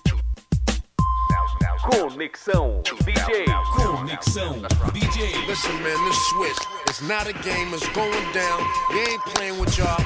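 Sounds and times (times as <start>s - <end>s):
rapping over a beat: 1.0s - 10.0s.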